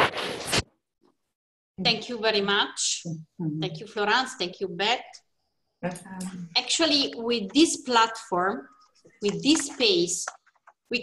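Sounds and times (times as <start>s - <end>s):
woman speaking: 1.8s - 5.2s, 5.8s - 10.3s.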